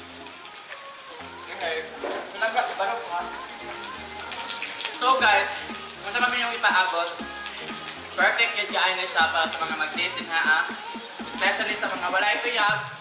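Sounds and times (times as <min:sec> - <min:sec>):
background music: 0:00.0 - 0:13.0
meat sizzling on a grill pan: 0:00.0 - 0:13.0
person talking: 0:05.0 - 0:07.3, 0:08.2 - 0:13.0.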